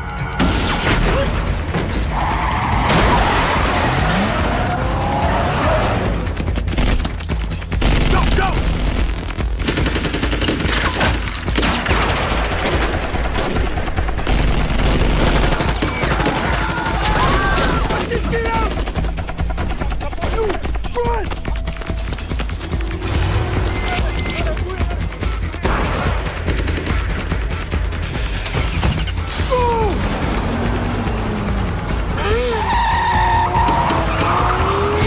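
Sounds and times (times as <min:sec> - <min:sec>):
vehicle sounds: 0:00.0 - 0:06.7, 0:16.0 - 0:35.0
film music: 0:00.0 - 0:35.0
automatic rifle gunfire: 0:07.8 - 0:17.8.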